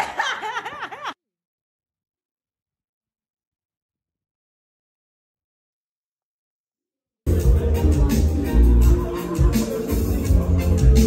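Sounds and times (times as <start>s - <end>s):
woman laughing: 0.0s - 1.2s.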